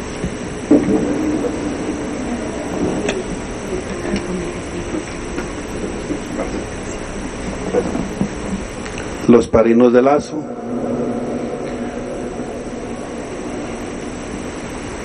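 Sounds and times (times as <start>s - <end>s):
electric fan running: 0.0s - 15.0s.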